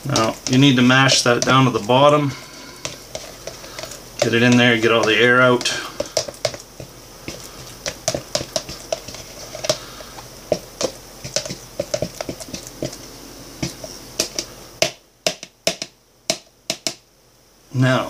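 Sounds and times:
faint steady hiss: 0:00.0 - 0:18.0
spoon knocking plastic cup: 0:02.8 - 0:09.8, 0:10.5 - 0:13.0, 0:13.6 - 0:17.0.

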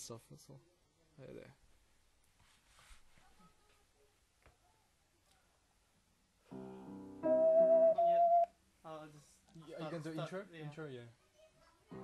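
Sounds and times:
held accompanying chord: 0:07.2 - 0:08.4
ocarina note: 0:07.2 - 0:08.5.

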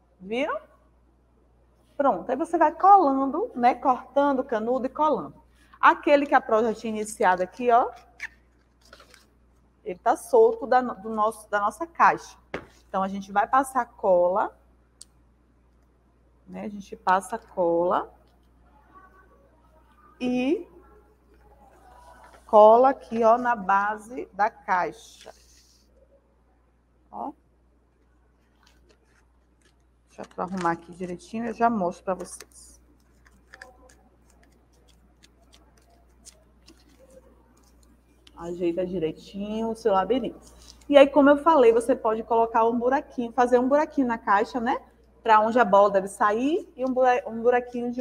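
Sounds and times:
paper rustling: 0:07.0 - 0:09.3, 0:21.3 - 0:23.6, 0:25.0 - 0:25.8, 0:28.3 - 0:31.3, 0:32.1 - 0:38.4.

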